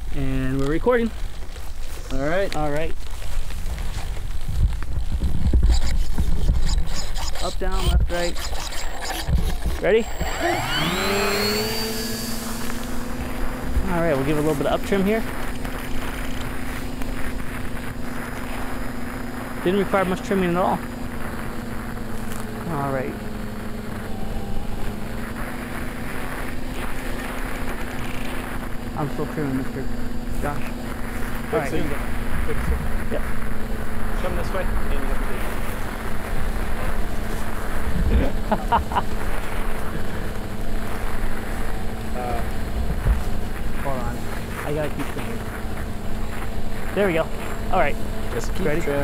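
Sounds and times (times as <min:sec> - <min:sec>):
electric motors and propellers humming: 0:00.0 - 0:49.0
rush of noise: 0:00.0 - 0:49.0
wind buffeting microphone: 0:02.9 - 0:08.5.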